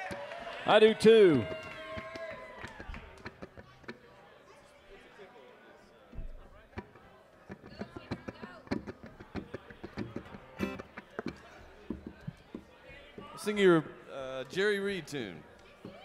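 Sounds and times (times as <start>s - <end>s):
plucked string instrument notes: 6.8s - 11.1s.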